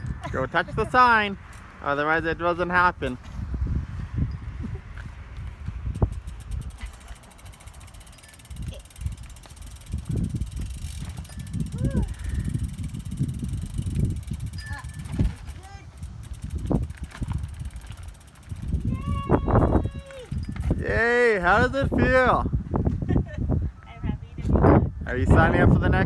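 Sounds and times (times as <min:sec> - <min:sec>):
wind rumble on microphone: 0:00.0 - 0:26.0
fast ticking of bicycle hub: 0:05.8 - 0:21.0.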